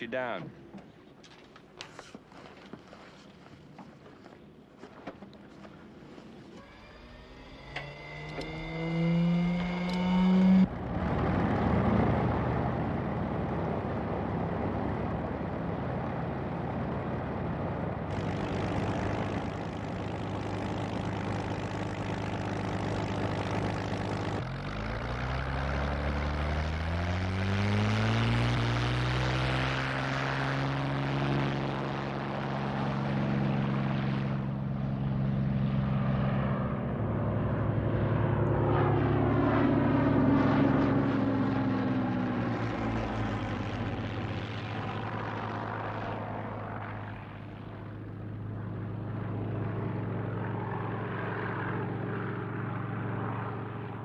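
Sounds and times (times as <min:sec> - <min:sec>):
planes passing by: 0:00.0 - 0:54.0
propeller plane engines revving: 0:00.0 - 0:54.0.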